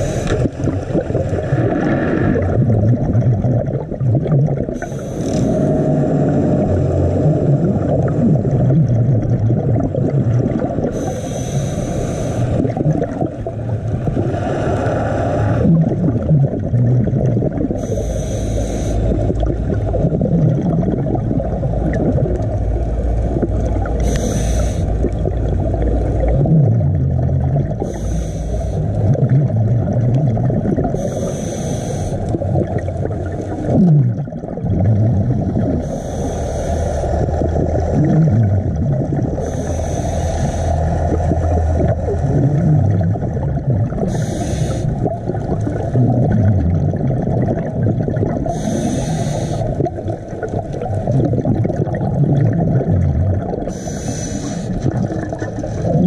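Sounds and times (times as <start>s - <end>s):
regulator inhalation hiss: 0.0s - 0.5s, 4.8s - 5.7s, 10.9s - 12.6s, 17.8s - 19.1s, 24.0s - 24.9s, 27.8s - 28.9s, 31.0s - 32.3s, 35.8s - 37.2s, 39.4s - 40.9s, 44.1s - 45.0s, 48.5s - 49.8s, 53.7s - 54.8s
muffled underwater bubbles: 0.0s - 56.0s.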